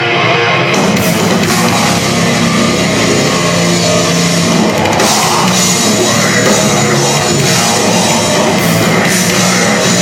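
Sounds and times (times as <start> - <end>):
distorted electric guitar drone: 0.0 - 10.0
drum kit: 0.0 - 10.0.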